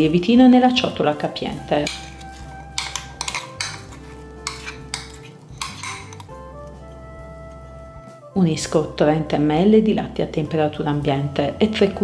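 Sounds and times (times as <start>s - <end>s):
soft background music: 0.0s - 12.0s
metal spoon scraping glass bowl: 1.6s - 6.4s.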